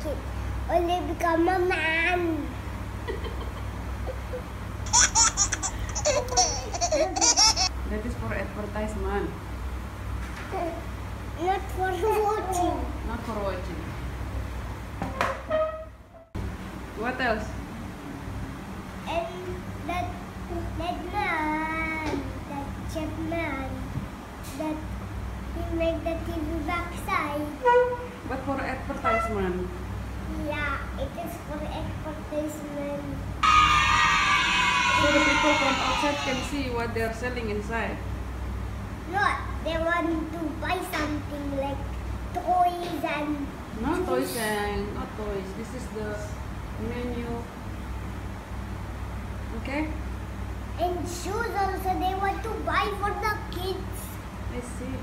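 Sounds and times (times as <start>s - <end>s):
young child laughing: 3.0s - 7.7s
bright sliding music sting: 33.4s - 36.5s.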